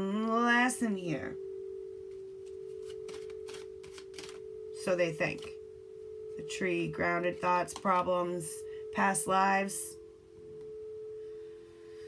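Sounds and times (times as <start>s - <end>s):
steady pure tone: 0.0s - 12.0s
cards rustling and tapping on table: 2.4s - 4.4s.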